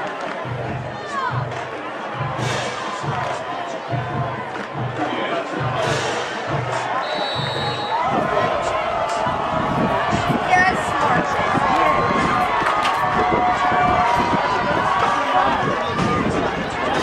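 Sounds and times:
stadium crowd noise: 0:00.0 - 0:17.0
short high whistle blast: 0:07.0 - 0:08.0.

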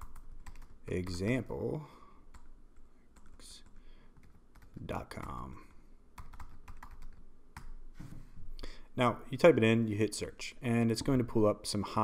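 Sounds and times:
computer keyboard typing: 0:00.0 - 0:01.2, 0:02.3 - 0:02.5, 0:03.2 - 0:05.4, 0:06.2 - 0:07.8.

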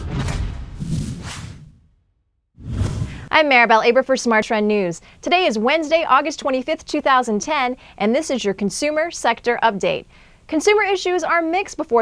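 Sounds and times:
whoosh sound effects: 0:00.0 - 0:01.9, 0:02.6 - 0:03.3
low rumble: 0:02.6 - 0:03.3.

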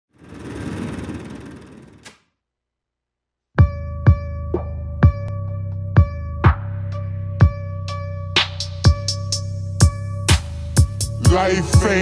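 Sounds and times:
dense rumbling noise: 0:00.1 - 0:02.1.

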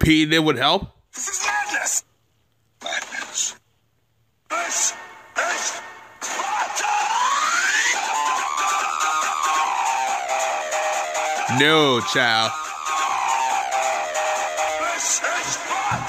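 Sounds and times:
man talking: 0:00.0 - 0:02.0, 0:11.4 - 0:12.6
man shouting: 0:04.5 - 0:08.2, 0:11.2 - 0:12.7, 0:14.6 - 0:16.0
loud music: 0:04.5 - 0:16.0.

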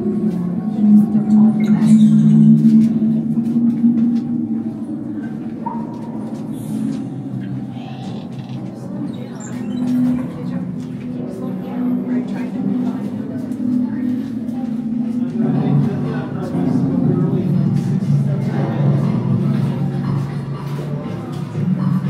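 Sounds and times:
faint music: 0:00.0 - 0:22.0
murmur of voices: 0:00.0 - 0:22.0.

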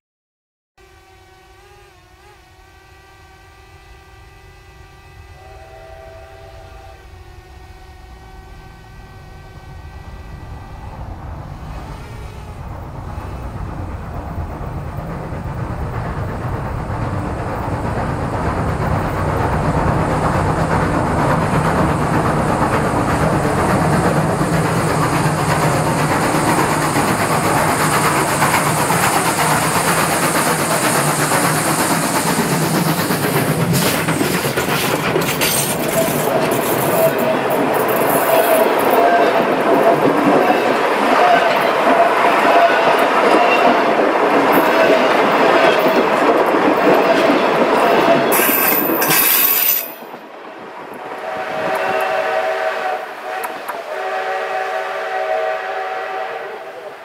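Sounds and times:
steam locomotive whistle: 0:00.8 - 0:12.6, 0:35.4 - 0:46.0, 0:46.9 - 0:50.0, 0:51.0 - 0:57.0
train running noise: 0:00.8 - 0:57.0.

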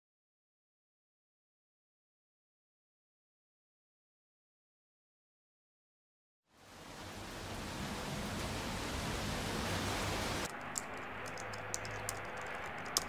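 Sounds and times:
steady rain falling: 0:06.5 - 0:13.0
keyboard typing clicks: 0:10.5 - 0:13.0.

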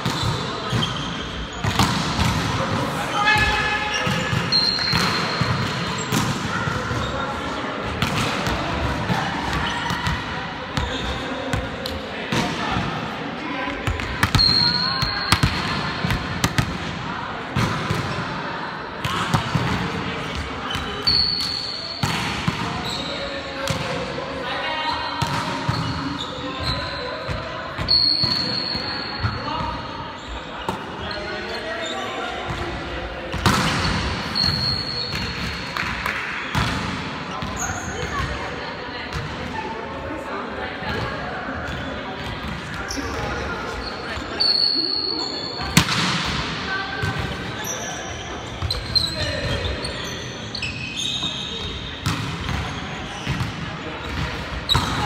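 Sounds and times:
sneakers squeaking on floor: 0:00.0 - 0:02.3, 0:03.0 - 0:07.4, 0:09.4 - 0:12.0, 0:13.7 - 0:16.6, 0:19.0 - 0:23.8, 0:24.8 - 0:35.9, 0:36.5 - 0:38.4, 0:40.9 - 0:55.0
players calling out and talking: 0:00.0 - 0:55.0
volleyball slaps and thuds: 0:01.6 - 0:02.6, 0:33.3 - 0:34.1, 0:45.7 - 0:46.4.

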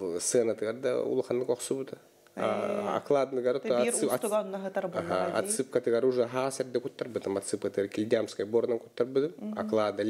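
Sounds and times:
man speaking: 0:00.0 - 0:04.4, 0:05.0 - 0:10.0.

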